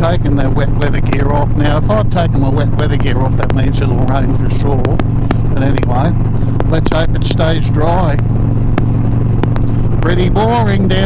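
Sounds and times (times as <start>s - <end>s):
motorcycle engine cruising: 0.0s - 11.0s
sharp clicks: 8.1s - 10.3s.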